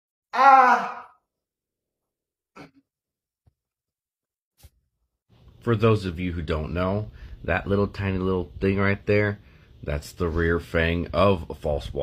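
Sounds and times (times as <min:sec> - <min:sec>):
man crying out in pain: 0:00.3 - 0:01.2.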